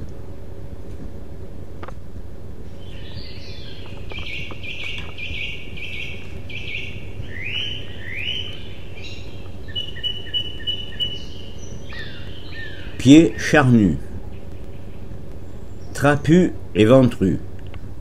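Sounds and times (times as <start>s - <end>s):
steady low hum: 0.0s - 18.0s
small birds singing: 2.6s - 17.9s.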